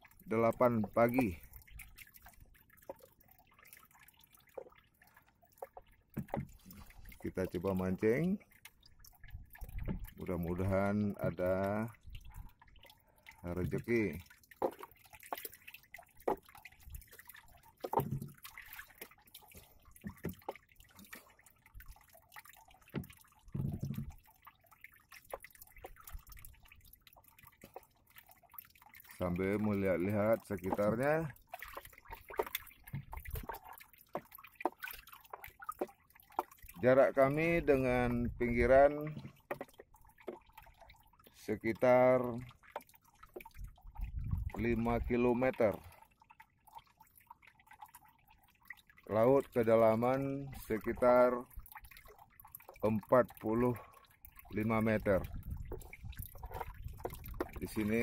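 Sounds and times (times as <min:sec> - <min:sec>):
faint drips and plops: 0:00.0 - 0:58.0
waves lapping against boat: 0:00.0 - 0:58.0.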